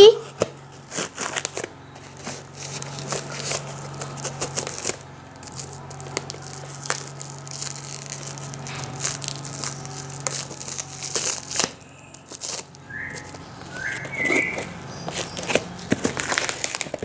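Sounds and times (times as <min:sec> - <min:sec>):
knife cutting packing tape: 0:00.0 - 0:17.0
short squeaks: 0:07.9 - 0:16.6.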